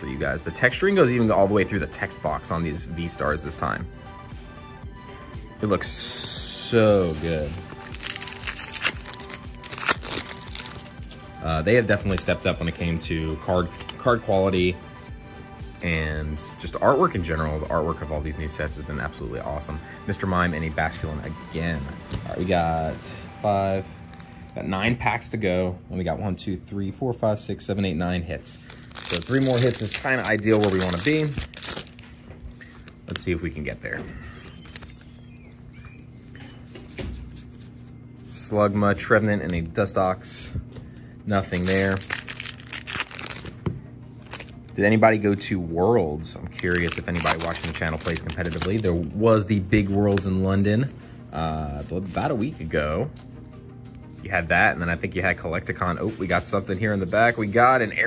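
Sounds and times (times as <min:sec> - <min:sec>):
faint background music: 0:00.0 - 0:58.0
foil wrapper crinkling and tearing: 0:07.7 - 0:11.2, 0:28.6 - 0:33.3, 0:34.3 - 0:35.3, 0:41.3 - 0:43.6, 0:44.2 - 0:44.6, 0:46.5 - 0:49.2
trading cards sliding and rubbing: 0:36.0 - 0:38.4.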